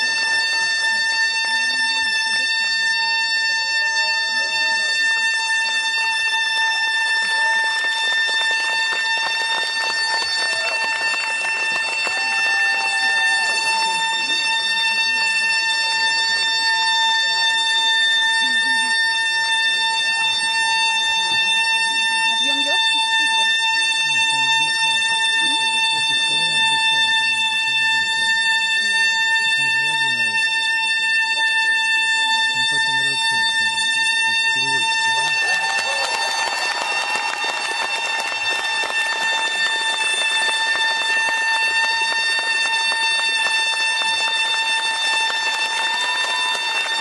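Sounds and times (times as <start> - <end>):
loud steady high tone: 0.0 - 47.0.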